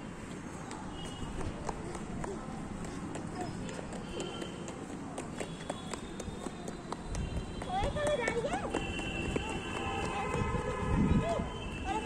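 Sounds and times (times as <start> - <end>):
child running on concrete: 0.3 - 12.0.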